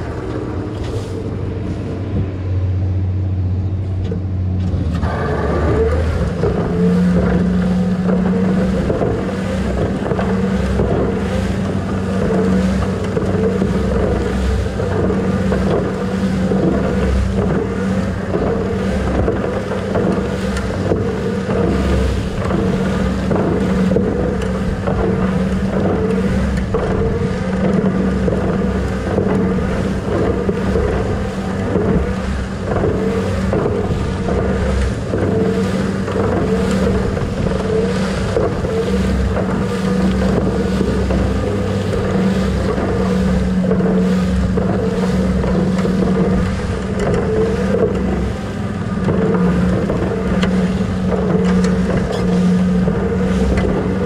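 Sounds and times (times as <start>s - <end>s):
tractor engine and spreader drone: 0.0s - 54.0s.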